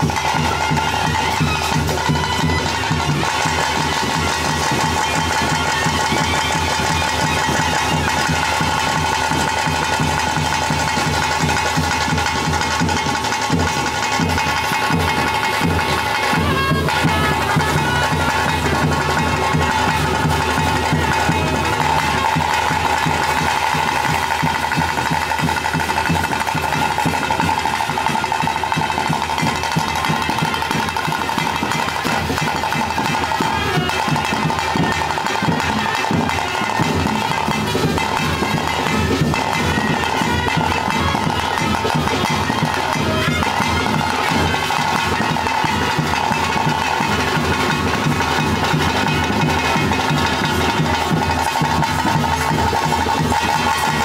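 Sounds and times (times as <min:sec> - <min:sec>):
fast drumming: 0:00.0 - 0:54.0
shrill reed pipe: 0:00.0 - 0:54.0.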